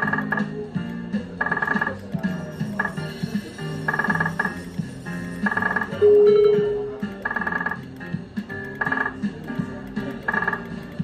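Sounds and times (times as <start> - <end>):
slot machine chime tones: 1.4 - 7.8
low looping tune: 3.8 - 8.0.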